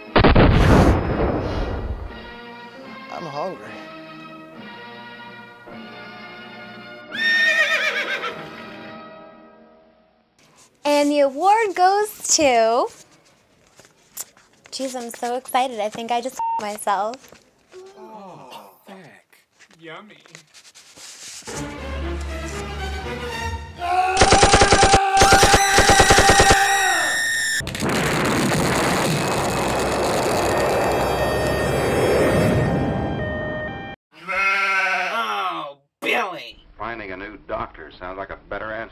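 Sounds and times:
background music: 2.0 - 10.3, 21.5 - 24.6
horse whinnying: 7.1 - 8.4
sheep bleating: 34.2 - 35.4.

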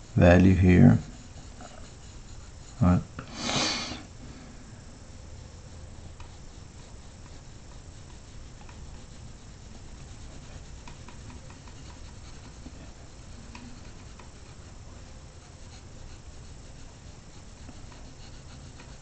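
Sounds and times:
pencil scratching on paper: 0.0 - 3.8, 5.1 - 19.0
low steady hum: 0.0 - 19.0.

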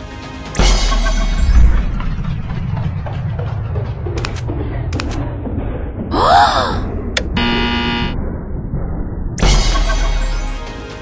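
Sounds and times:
rising and falling tone: 7.1 - 8.6
error buzzer: 7.2 - 8.2.

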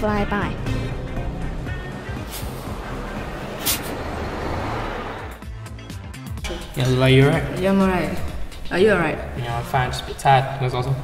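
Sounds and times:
traffic rumble: 0.0 - 5.8
background music: 0.0 - 11.0
short sharp hiss: 2.2 - 2.7, 3.6 - 4.0.

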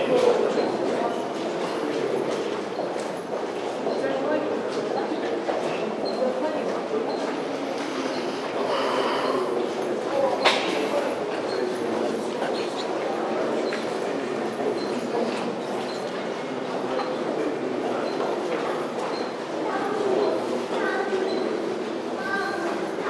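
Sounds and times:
indistinct chatter: 0.0 - 23.0
footsteps in concrete tunnel: 0.2 - 7.4.

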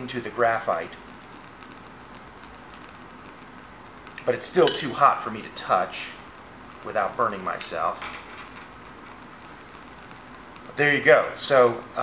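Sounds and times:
bunsen burner flame hissing: 0.0 - 12.0.

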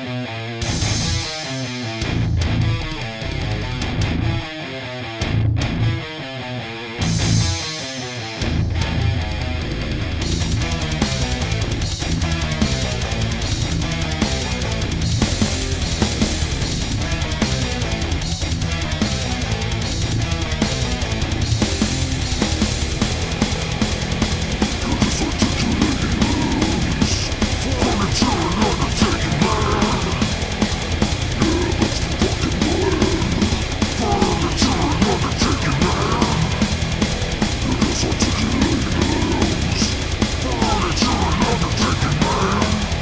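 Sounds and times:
bass riffing: 0.0 - 43.0
electric guitar riffing: 0.0 - 43.0
heavy metal band: 0.0 - 43.0
drum kit beat: 0.6 - 2.8, 7.0 - 43.0.

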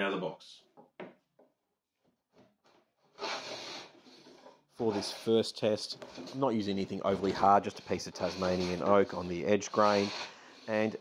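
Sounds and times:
hand plane scraping swish: 3.2 - 11.0.

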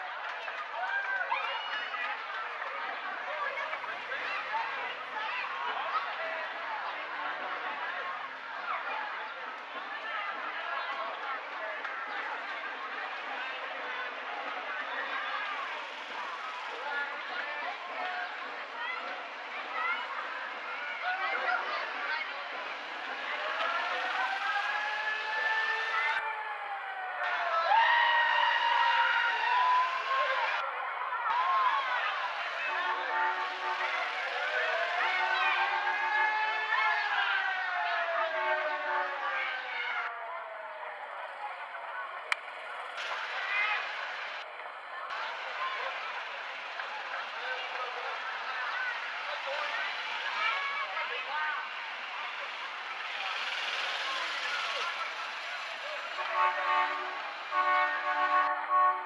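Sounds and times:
outdoor crowd and street noise: 0.0 - 59.0
siren wailing: 23.5 - 30.6.

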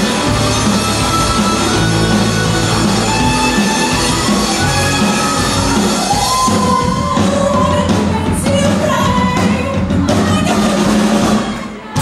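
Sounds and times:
electric guitars: 0.0 - 8.3
bass guitar: 0.0 - 11.6
drum kit: 0.0 - 12.0.

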